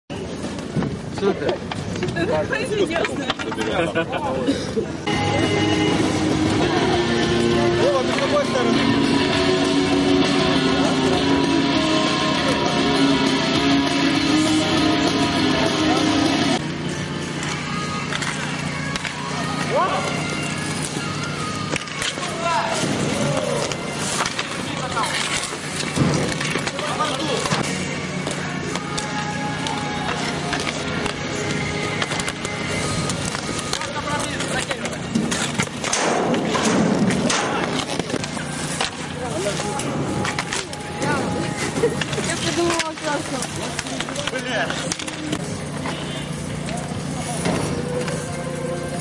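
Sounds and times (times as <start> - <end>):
skate wheels rolling on asphalt: 0.1 - 49.0
guitar music: 5.1 - 16.6
sticks and ball clacking: 17.3 - 41.1, 41.9 - 46.0
players shouting: 18.9 - 25.8.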